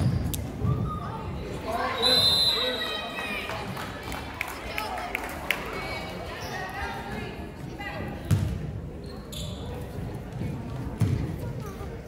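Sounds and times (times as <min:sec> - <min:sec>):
chatter of voices: 0:00.5 - 0:12.0.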